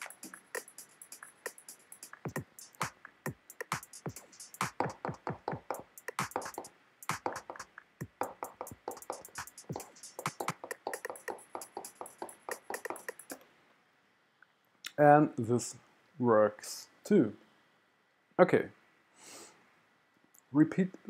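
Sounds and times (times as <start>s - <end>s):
electronic drum-machine beat: 0.0s - 13.4s.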